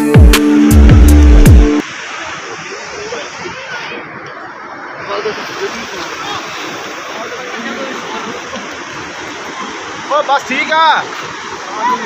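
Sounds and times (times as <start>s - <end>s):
river rushing over boulders: 1.8s - 12.0s.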